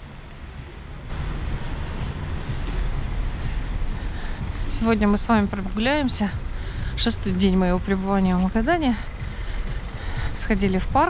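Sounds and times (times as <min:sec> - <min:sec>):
street noise rumble and hiss: 0:00.0 - 0:11.0.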